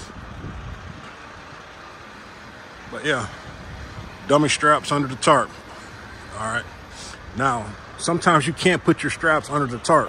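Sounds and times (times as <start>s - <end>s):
vehicle engine rumbling: 0.0s - 10.0s
faint hiss: 1.0s - 8.1s.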